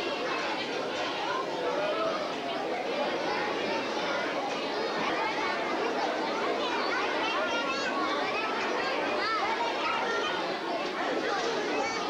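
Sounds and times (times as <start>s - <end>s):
children talking and calling out: 0.0s - 12.0s.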